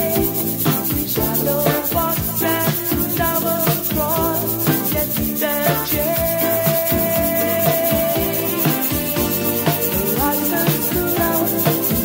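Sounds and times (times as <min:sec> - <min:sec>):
metal tube shaker: 0:00.0 - 0:12.0
soul-pop band recording: 0:00.0 - 0:12.0.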